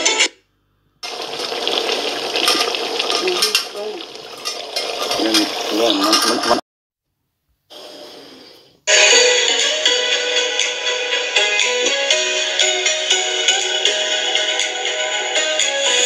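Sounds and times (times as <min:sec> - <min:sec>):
spoon scraping metal pot: 0:01.2 - 0:06.6
faint voices: 0:03.0 - 0:04.2, 0:05.0 - 0:06.6.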